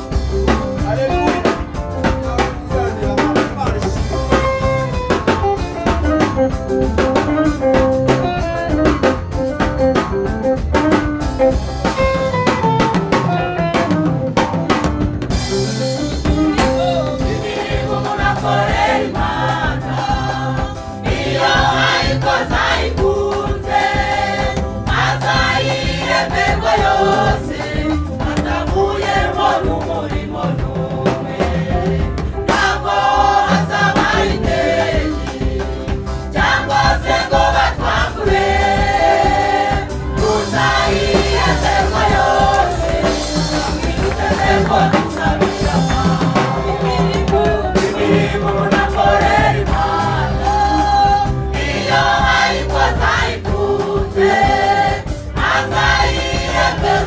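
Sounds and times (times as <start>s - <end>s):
drums: 0.0s - 57.0s
choir singing in harmony: 15.6s - 57.0s.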